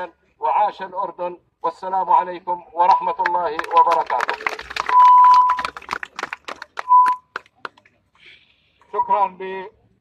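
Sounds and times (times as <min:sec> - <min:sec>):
hand-claps: 0:03.2 - 0:08.0
megaphone whine: 0:04.9 - 0:05.7.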